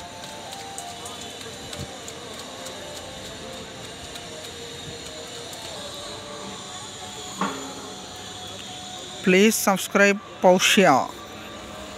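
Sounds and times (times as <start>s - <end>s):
faint steady high tones: 0.0s - 11.9s.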